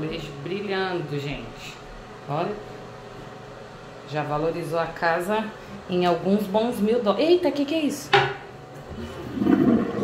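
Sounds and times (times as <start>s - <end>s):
toilet flushing: 8.9s - 10.0s.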